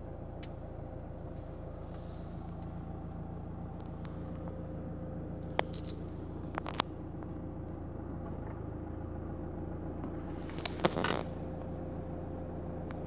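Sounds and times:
diesel engine idling: 0.0 - 13.0.

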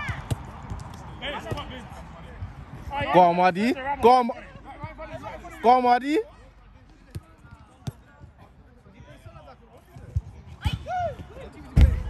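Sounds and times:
distant shouts of players: 10.5 - 12.0
football kick thuds: 11.8 - 12.0.

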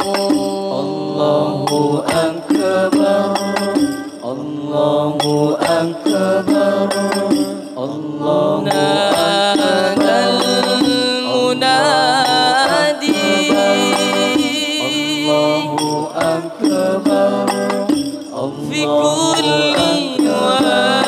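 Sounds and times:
frame drums beating: 0.0 - 4.6, 5.2 - 7.9, 8.5 - 21.0
man singing devotional melody: 0.0 - 21.0.

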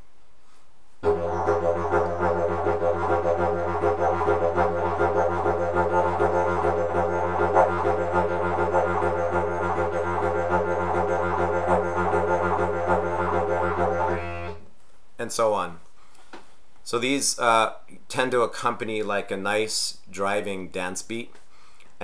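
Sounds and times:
didgeridoo drone: 1.0 - 14.6.

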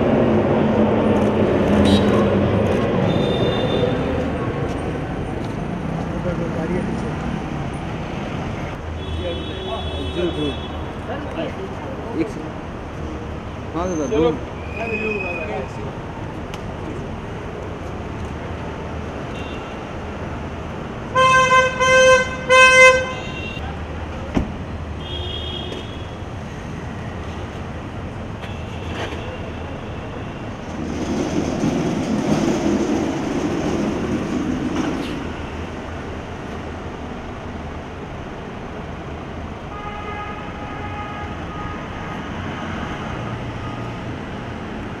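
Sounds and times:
car horns honking: 1.8 - 2.3, 3.0 - 4.1, 21.1 - 23.6.

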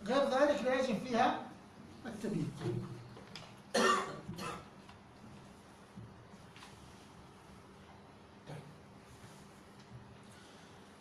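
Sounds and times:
man coughing: 3.7 - 4.7.

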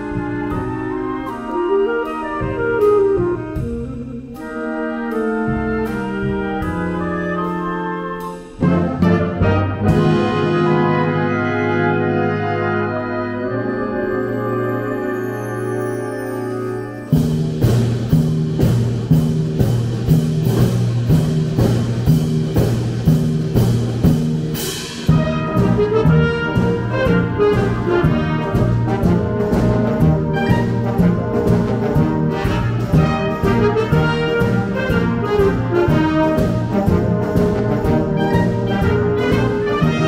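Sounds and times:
wind band playing: 0.0 - 40.0.

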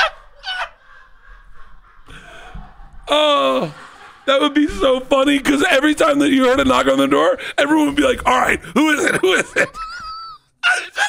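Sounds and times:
high squealing cackle: 0.0 - 5.3
men laughing: 0.0 - 11.0.

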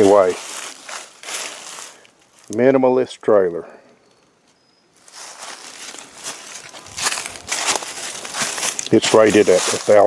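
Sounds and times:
footsteps on dry leaves: 0.0 - 2.6, 5.0 - 10.0.

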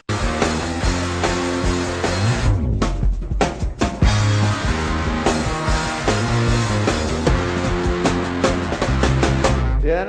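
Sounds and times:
live rock band playing: 0.0 - 9.8.

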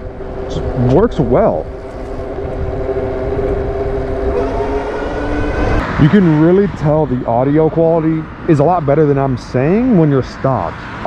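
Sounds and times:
electric bike motor whine: 0.0 - 5.8
wind rumble on microphone: 0.0 - 10.4.

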